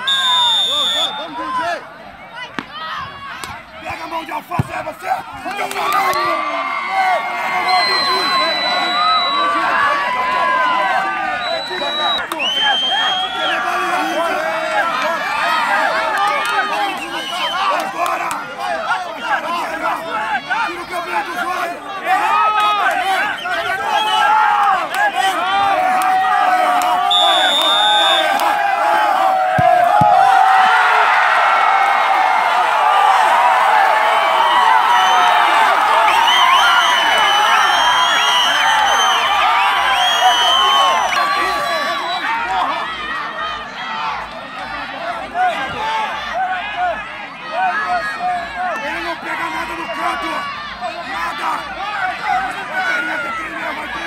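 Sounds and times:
referee's whistle blast: 0:00.0 - 0:01.6, 0:07.6 - 0:09.8, 0:11.3 - 0:13.6, 0:27.0 - 0:28.5, 0:36.1 - 0:42.4
crowd cheering: 0:00.0 - 0:54.0
crowd talking and shouting: 0:00.0 - 0:54.0.

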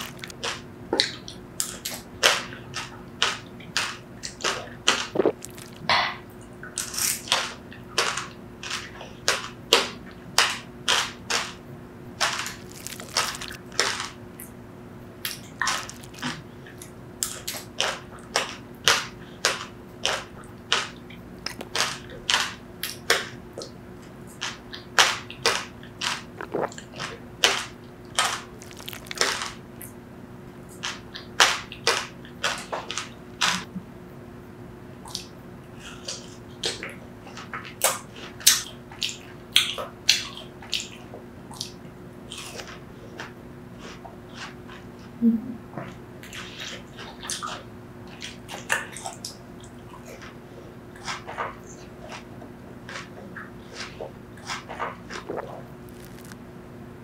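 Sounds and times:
chewing crunchy seeds: 0:00.0 - 0:00.6, 0:02.7 - 0:05.9, 0:12.2 - 0:14.2, 0:15.3 - 0:23.2, 0:26.0 - 0:29.6, 0:51.0 - 0:56.4.

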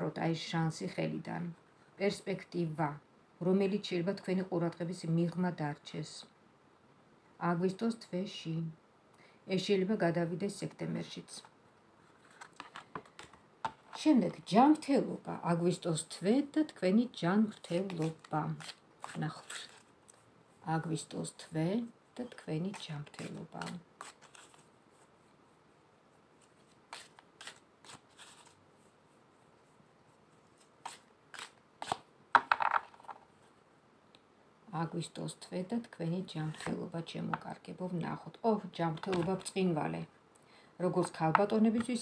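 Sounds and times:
cards being shuffled: 0:12.1 - 0:14.0, 0:17.5 - 0:19.9, 0:22.7 - 0:25.1, 0:26.4 - 0:28.6, 0:30.5 - 0:33.3.

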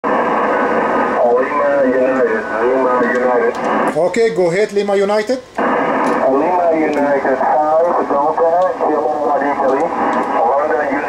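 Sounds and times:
radio hiss: 0:00.0 - 0:11.0
voice over radio: 0:00.6 - 0:11.0.

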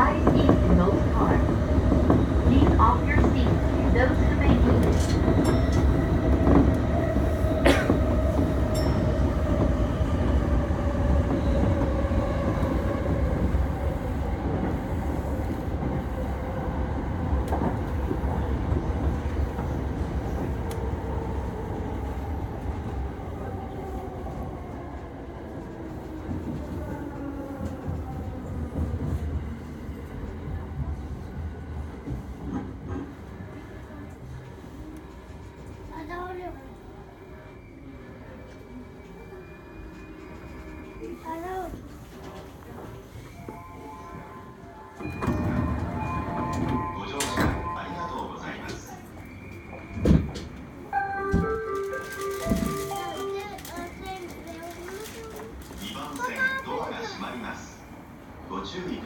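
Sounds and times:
electric train rumbling on rails: 0:00.0 - 0:59.0.

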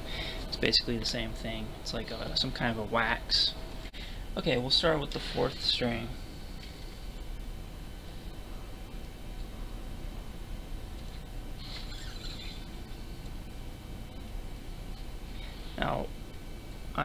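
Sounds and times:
low room hum: 0:00.0 - 0:17.0.

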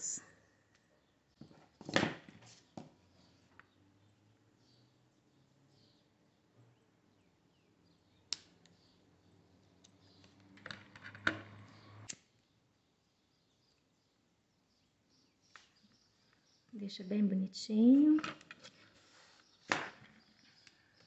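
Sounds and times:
faint handling of cord: 0:18.2 - 0:20.8.

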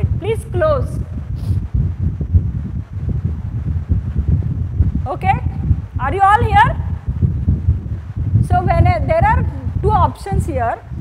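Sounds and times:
wind rumble on microphone: 0:00.0 - 0:11.0
faint hiss: 0:00.5 - 0:01.8.

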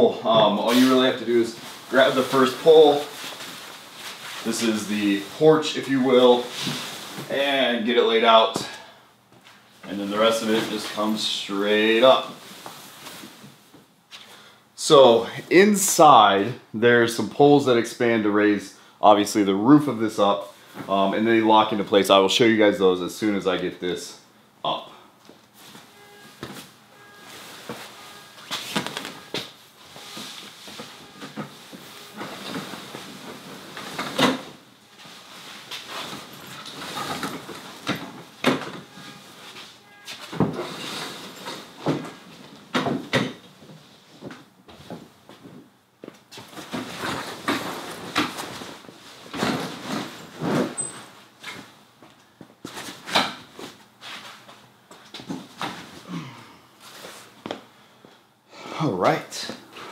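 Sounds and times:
fabric rustling and flapping: 0:00.4 - 0:07.3, 0:25.5 - 0:38.4.

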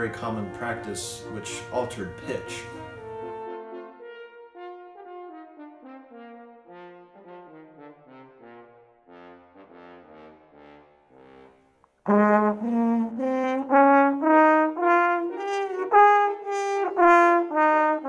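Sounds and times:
french horn notes: 0:00.0 - 0:18.0.

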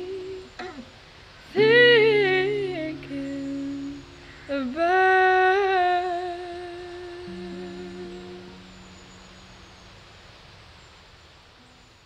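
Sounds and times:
acoustic guitar ringing: 0:00.6 - 0:00.9, 0:01.5 - 0:06.5, 0:07.2 - 0:09.8
woman singing long note: 0:01.5 - 0:09.1.

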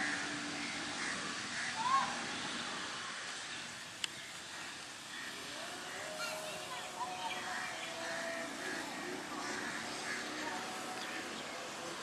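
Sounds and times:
outdoor hiss: 0:00.0 - 0:12.0
distant voices: 0:04.3 - 0:12.0.

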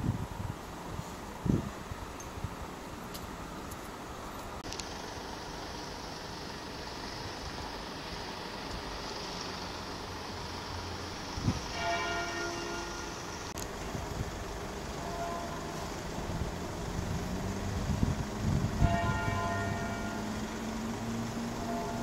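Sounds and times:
low traffic hum: 0:00.0 - 0:22.0
church bell ringing: 0:11.7 - 0:13.2, 0:18.8 - 0:20.3, 0:21.6 - 0:22.0.

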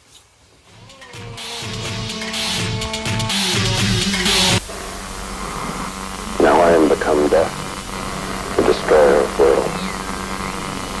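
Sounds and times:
static hiss: 0:04.0 - 0:11.0
electrical hum: 0:04.6 - 0:11.0.

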